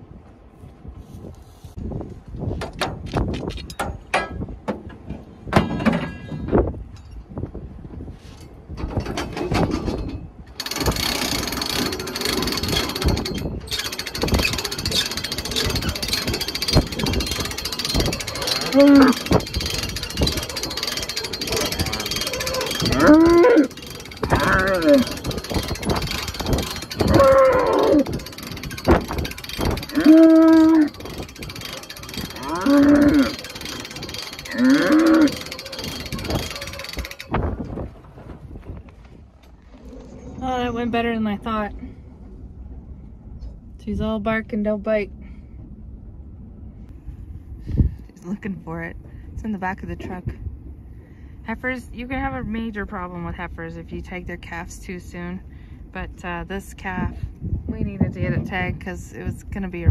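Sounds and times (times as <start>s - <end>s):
cattle bawling: 14.6s - 28.3s, 29.6s - 37.2s.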